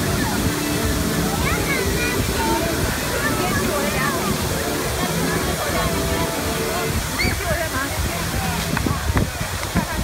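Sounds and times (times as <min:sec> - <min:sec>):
indistinct voices: 0:00.0 - 0:09.2
fountain jets splashing into pool: 0:00.0 - 0:10.0.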